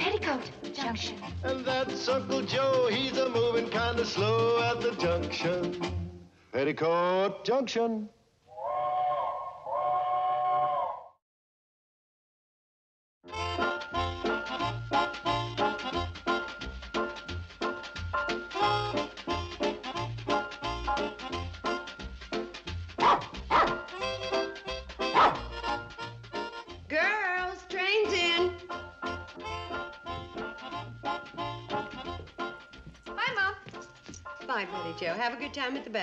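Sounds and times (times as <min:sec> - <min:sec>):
background music: 0:00.0 - 0:06.4, 0:13.3 - 0:36.0
small dog barking: 0:23.0 - 0:23.9, 0:25.1 - 0:25.5.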